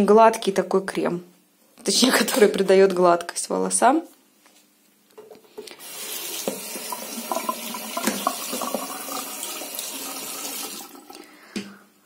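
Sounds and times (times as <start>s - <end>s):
water running from a tap: 5.8s - 11.3s.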